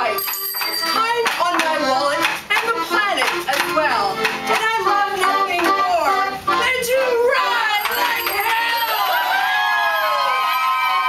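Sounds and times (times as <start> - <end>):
rhythmic hand clapping: 0.2 - 5.8.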